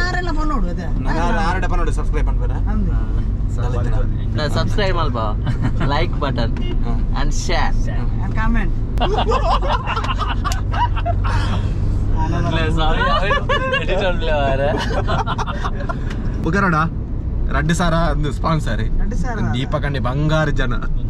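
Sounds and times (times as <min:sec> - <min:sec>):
car engine and road rumble: 0:00.0 - 0:21.0
men talking: 0:01.0 - 0:02.7, 0:03.5 - 0:08.1, 0:09.0 - 0:21.0.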